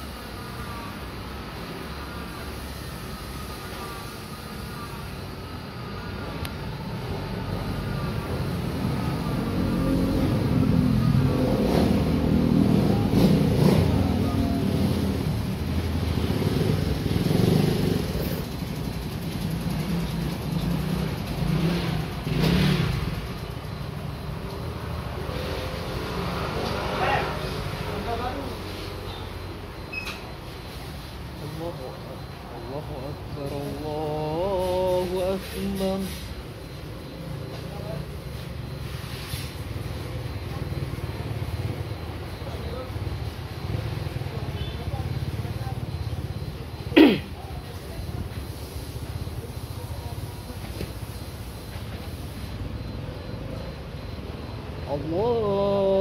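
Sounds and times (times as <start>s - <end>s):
vehicles passing: 0.0s - 56.0s.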